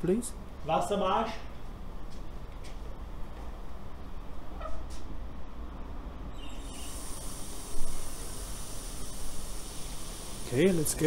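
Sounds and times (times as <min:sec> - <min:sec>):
water hissing through hose: 0:06.4 - 0:11.0.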